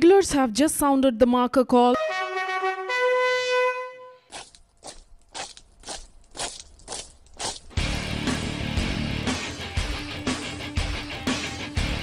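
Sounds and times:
bugle call: 0:02.0 - 0:04.3
sharp crunching knocks: 0:04.3 - 0:07.9.

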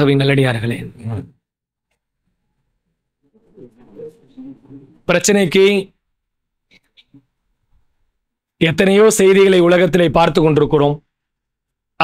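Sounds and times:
faint low bird cooing: 0:03.2 - 0:05.1.

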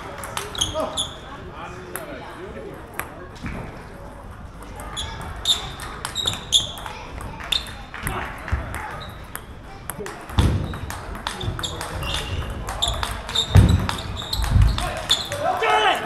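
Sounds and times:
table tennis ball clicking: 0:00.2 - 0:00.8, 0:04.8 - 0:07.8, 0:08.7 - 0:15.4.

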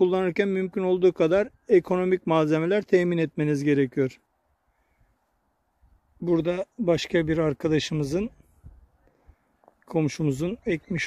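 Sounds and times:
man speaking: 0:00.0 - 0:04.2, 0:06.2 - 0:08.4, 0:09.9 - 0:11.0.

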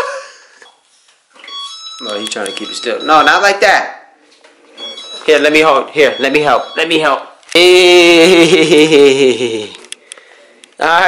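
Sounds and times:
hoverboard warning alarm tone: 0:01.5 - 0:03.4, 0:04.8 - 0:05.4, 0:06.0 - 0:07.1.

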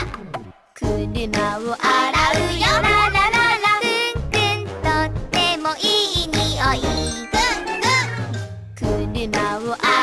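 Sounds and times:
bouncy backing track: 0:00.0 - 0:10.0
person singing: 0:00.8 - 0:08.1, 0:08.8 - 0:10.0.

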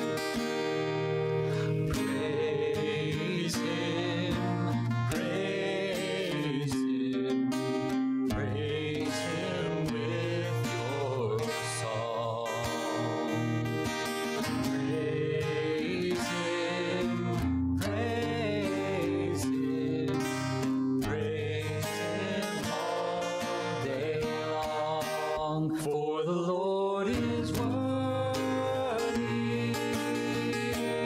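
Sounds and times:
acoustic guitar: 0:00.0 - 0:31.0
man singing into a microphone: 0:01.2 - 0:31.0
congregation singing: 0:01.9 - 0:07.6, 0:08.3 - 0:13.5, 0:14.7 - 0:31.0.

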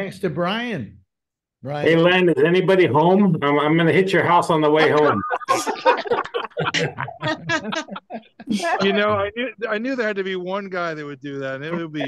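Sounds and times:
people laughing and talking: 0:04.6 - 0:10.1, 0:11.5 - 0:12.0.

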